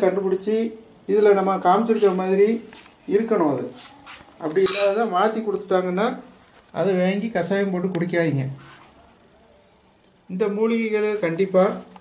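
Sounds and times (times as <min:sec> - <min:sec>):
person talking: 0:00.0 - 0:08.6
crockery clinking: 0:04.6 - 0:05.2.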